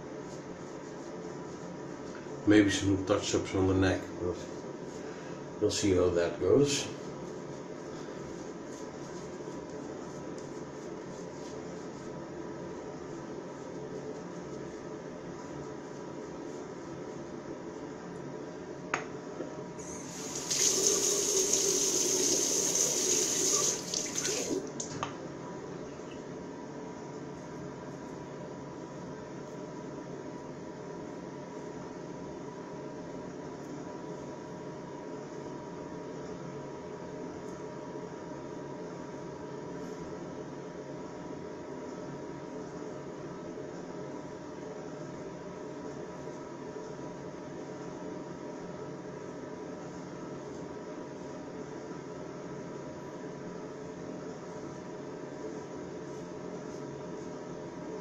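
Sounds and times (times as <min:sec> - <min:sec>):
sink tap running: 0:19.8 - 0:24.9
faint steady hiss: 0:19.8 - 0:25.1.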